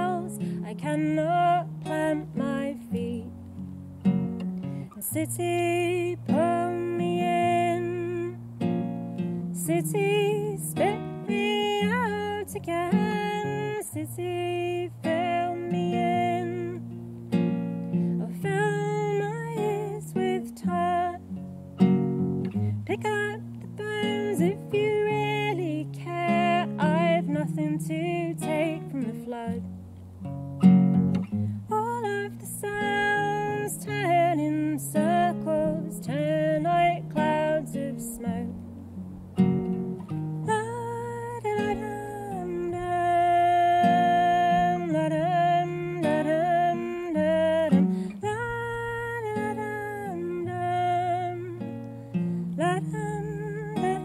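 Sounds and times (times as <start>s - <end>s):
woman singing: 0.0s - 3.7s, 4.9s - 21.5s, 22.5s - 29.7s, 31.6s - 38.8s, 40.2s - 54.0s
fingerpicked classical guitar: 0.0s - 54.0s.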